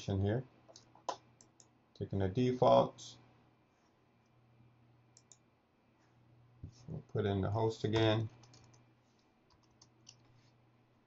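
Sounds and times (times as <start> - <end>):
low steady hum: 0.0 - 11.0
computer mouse click: 5.1 - 5.4, 8.3 - 10.3.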